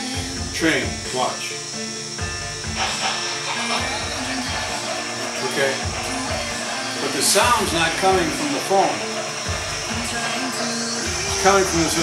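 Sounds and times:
steady hiss and hum: 0.0s - 12.0s
model train sound effects: 2.7s - 12.0s.

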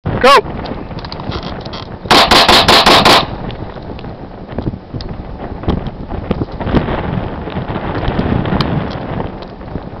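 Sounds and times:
pistol shots in rapid string: 2.1s - 3.4s.

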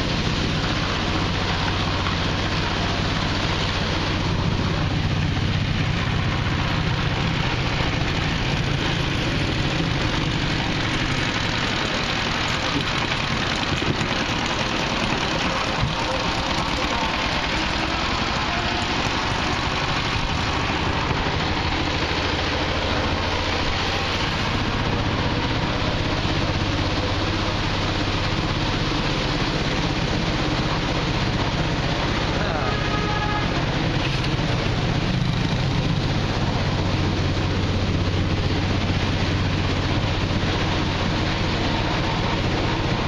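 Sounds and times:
road and wind noise: 0.0s - 43.0s
steady low hum: 0.0s - 43.0s
vehicle engine running: 0.0s - 43.0s.

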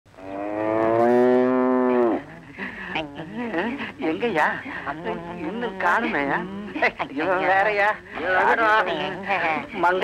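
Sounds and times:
cow mooing: 0.2s - 2.4s.

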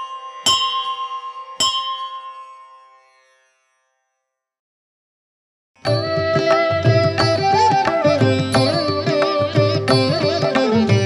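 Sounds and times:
bell ringing: 0.0s - 3.2s.

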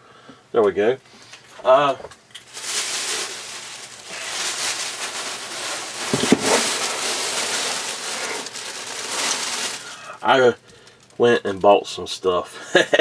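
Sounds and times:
plastic bag rustling: 2.4s - 11.2s.

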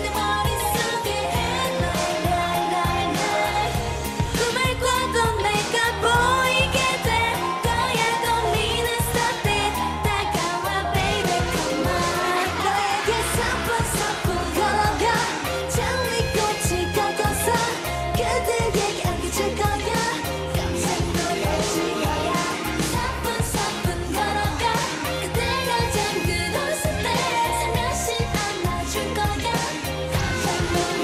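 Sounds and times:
group singing into microphones: 0.0s - 31.0s
upbeat pop backing track: 0.0s - 31.0s.

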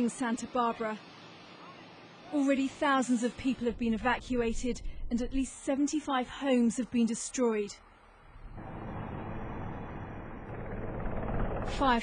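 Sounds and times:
low hum: 7.8s - 12.0s
helicopter rotor and turbine: 8.2s - 12.0s.

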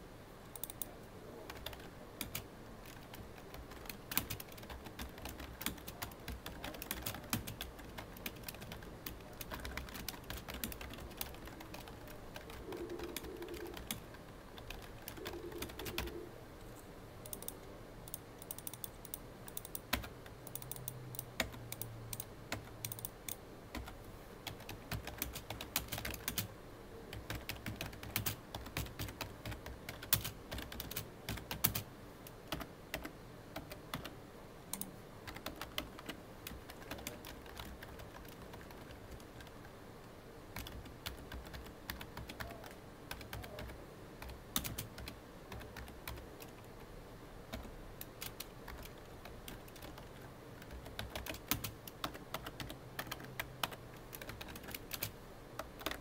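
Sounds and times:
keyboard typing clicks: 0.5s - 0.9s, 1.5s - 16.2s, 17.2s - 26.5s, 27.1s - 31.9s, 34.7s - 39.6s, 40.6s - 46.7s, 47.5s - 56.0s.

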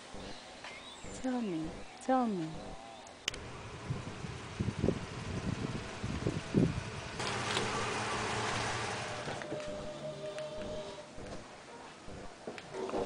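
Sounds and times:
car engine running low: 3.3s - 9.9s.

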